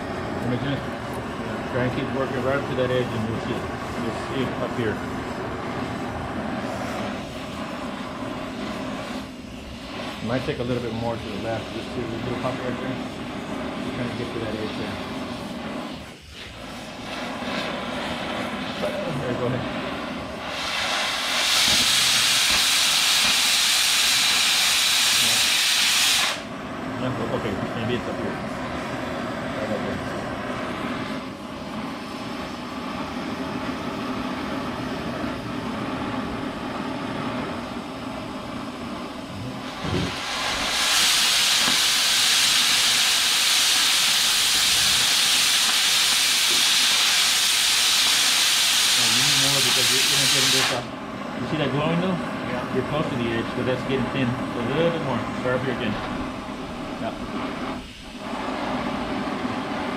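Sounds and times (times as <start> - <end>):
cutting torch oxygen jet hissing: 0.0 - 59.9
torch preheat flame noise: 0.0 - 59.9.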